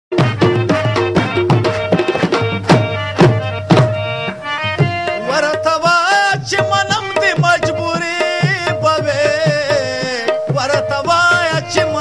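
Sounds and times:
harmonium holding a chord: 0:00.1 - 0:12.0
tabla strokes: 0:00.1 - 0:12.0.

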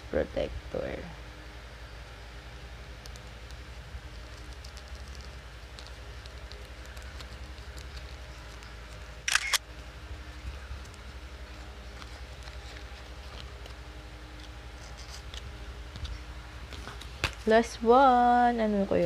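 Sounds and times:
low hum: 0:00.0 - 0:19.0.

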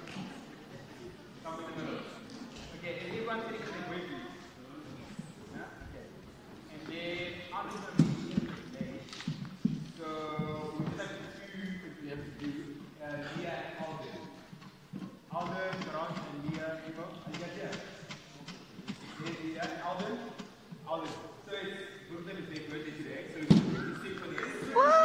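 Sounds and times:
man talking: 0:01.4 - 0:09.2, 0:09.9 - 0:14.4, 0:15.3 - 0:24.9.

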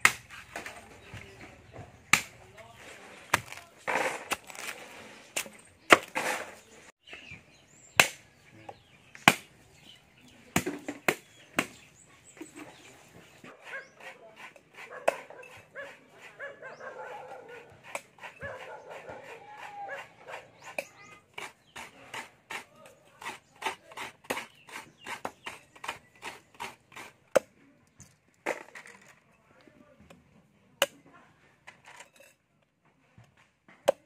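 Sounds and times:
blade scraping coconut shell: 0:02.2 - 0:06.8, 0:17.3 - 0:27.5.

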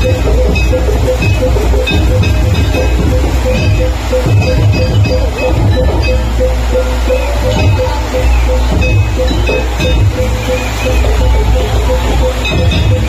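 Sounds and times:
deep drum beats: 0:00.0 - 0:13.0
gamelan music: 0:00.0 - 0:13.0.

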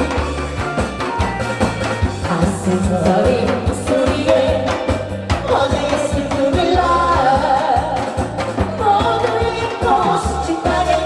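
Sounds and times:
backing track with bass and beat: 0:00.0 - 0:11.0
amplified singing: 0:02.2 - 0:11.0.

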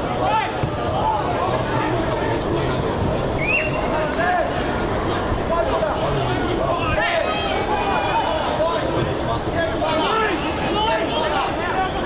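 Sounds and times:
players and spectators shouting: 0:00.0 - 0:12.0.

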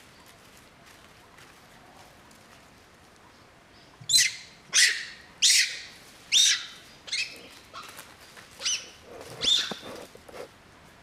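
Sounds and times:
macaque screeching: 0:08.6 - 0:09.8.

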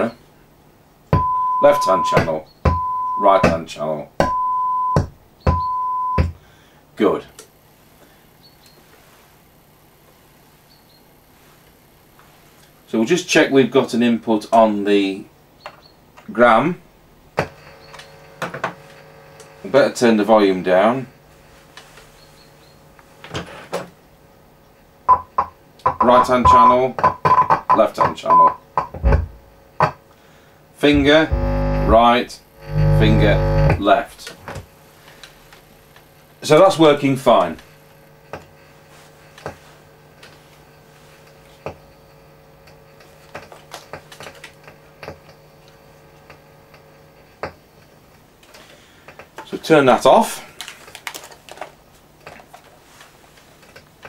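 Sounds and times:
faint amplifier hum: 0:00.0 - 0:54.0.

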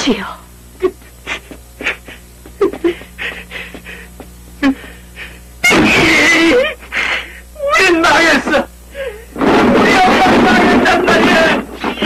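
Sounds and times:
woman crying out: 0:05.6 - 0:06.8.

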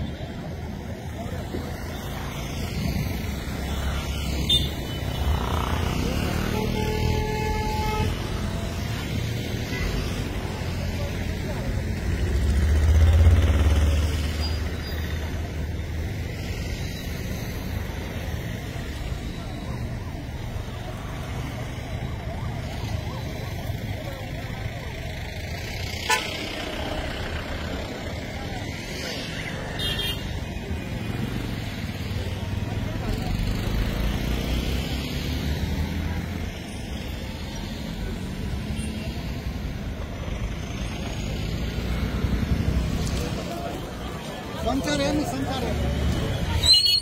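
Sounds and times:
low rumble of traffic: 0:00.0 - 0:47.0
faint voices: 0:08.1 - 0:46.9.

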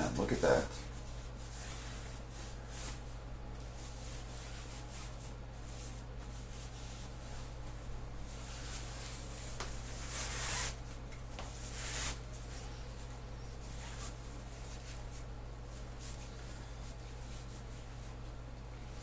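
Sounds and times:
cloth rustling: 0:00.4 - 0:18.3.

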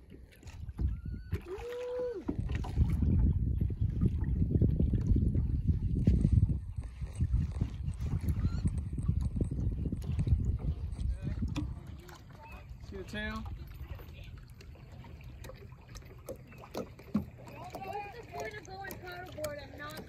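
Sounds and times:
water churning around hulls: 0:00.0 - 0:20.0.

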